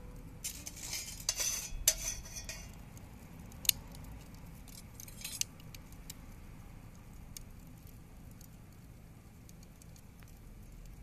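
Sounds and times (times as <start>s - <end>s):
low steady hiss: 0.0s - 11.0s
wood embers crackling: 0.0s - 11.0s.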